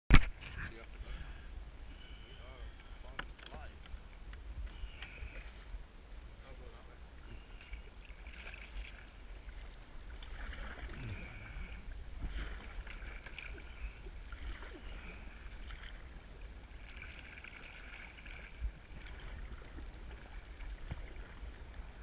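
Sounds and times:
kayak paddle splashing in water: 0:07.4 - 0:22.0
low wind rumble on microphone: 0:09.0 - 0:16.8, 0:17.9 - 0:22.0.

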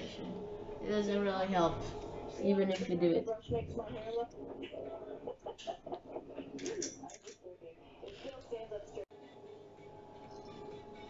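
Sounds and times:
person laughing: 0:04.7 - 0:06.8.

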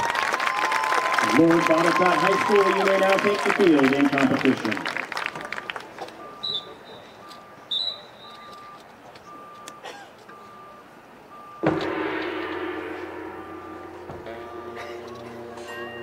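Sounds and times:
electronic metronome beep: 0:06.2 - 0:11.9
short high whistles: 0:06.4 - 0:08.8
marching band playing: 0:11.5 - 0:16.0.

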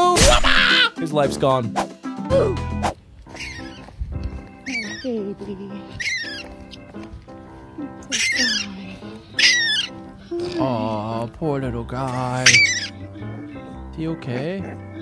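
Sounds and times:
background music: 0:00.0 - 0:15.0
young raccoon crying: 0:03.3 - 0:03.9, 0:04.5 - 0:11.2, 0:12.0 - 0:13.7.

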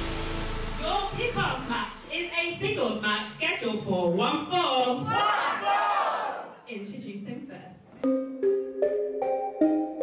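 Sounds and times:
crowd yelling and cheering: 0:05.1 - 0:06.5
keyboard entrance music: 0:08.0 - 0:10.0.

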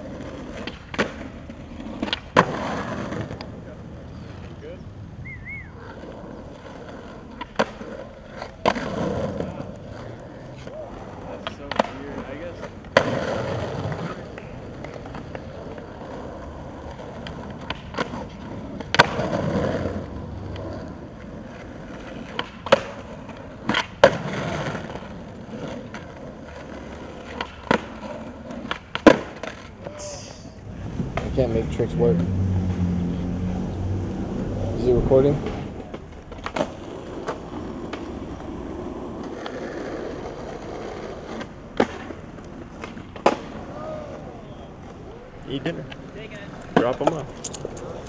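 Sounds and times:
skateboard clacks on concrete: 0:00.0 - 0:04.8, 0:05.8 - 0:30.0, 0:35.2 - 0:48.0
skateboard wheels rolling: 0:00.0 - 0:48.0.

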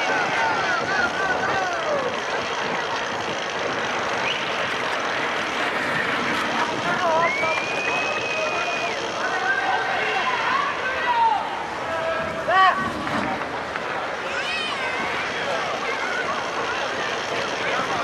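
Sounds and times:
voices shouting: 0:00.0 - 0:02.3, 0:06.8 - 0:13.0
crowd noise: 0:00.0 - 0:18.0.

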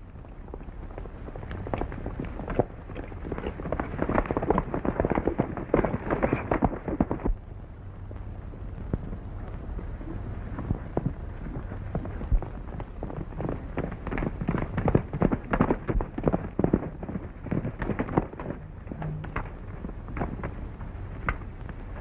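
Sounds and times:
horses galloping hoofbeats: 0:00.0 - 0:22.0.

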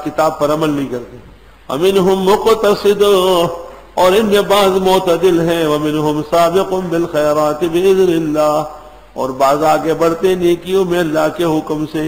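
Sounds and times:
man chanting melodic recitation: 0:00.0 - 0:12.0.

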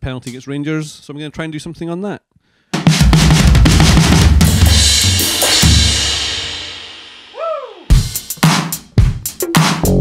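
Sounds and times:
drum machine hits: 0:02.8 - 0:06.8, 0:07.9 - 0:10.0.

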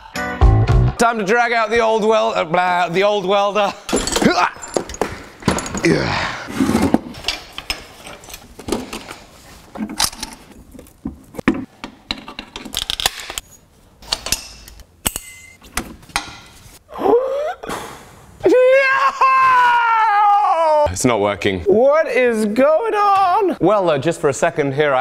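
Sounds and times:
cables and fittings clinking: 0:03.9 - 0:06.0
man wailing: 0:18.4 - 0:20.9.

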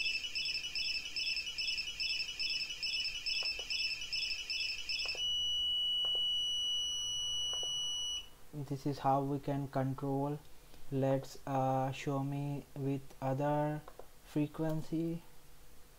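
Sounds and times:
short high-pitched beeps: 0:00.0 - 0:08.3
steady high buzzer tone: 0:00.0 - 0:08.3.

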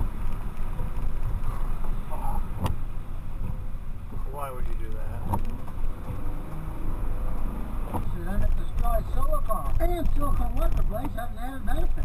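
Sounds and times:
car engine rumble: 0:00.0 - 0:12.0
tyres on slushy road: 0:00.0 - 0:12.0.

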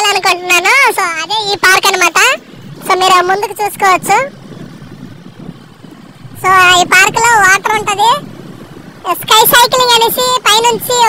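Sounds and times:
motorcycle engine rumble: 0:00.0 - 0:11.0
wind noise: 0:00.0 - 0:11.0.

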